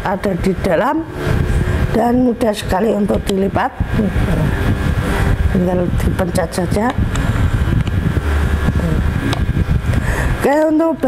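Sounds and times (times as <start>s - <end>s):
low rumble: 0.0s - 10.6s.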